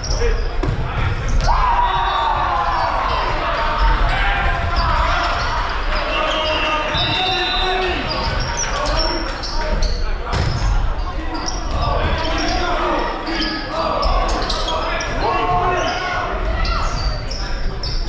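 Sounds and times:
people calling and shouting: 0:00.0 - 0:18.0.

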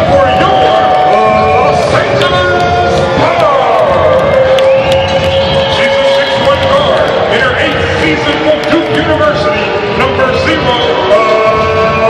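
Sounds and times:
announcer's voice echoing in arena: 0:00.0 - 0:12.0.

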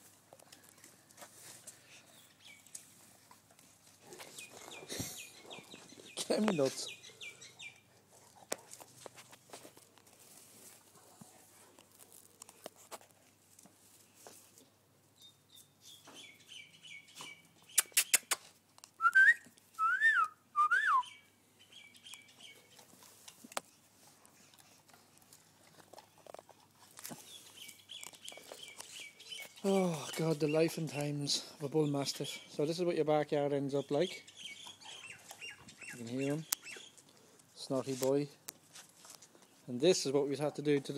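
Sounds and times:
birds chirping faintly: 0:00.4 - 0:09.1, 0:14.0 - 0:18.3, 0:20.9 - 0:40.9
sharp clicks: 0:17.7 - 0:18.9
rising and falling whistles: 0:19.0 - 0:21.2.

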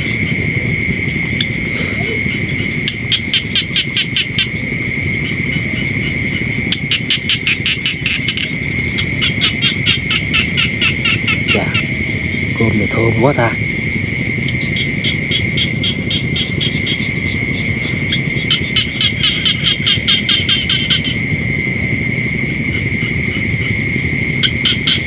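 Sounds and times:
low rumble: 0:00.0 - 0:24.7
insects high-pitched drone: 0:00.0 - 0:25.0
rapid pulsed frog calls: 0:00.0 - 0:25.0.

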